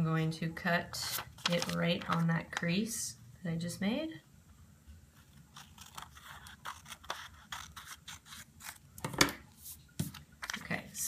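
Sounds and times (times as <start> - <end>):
scissors snipping paper: 5.5 - 8.8.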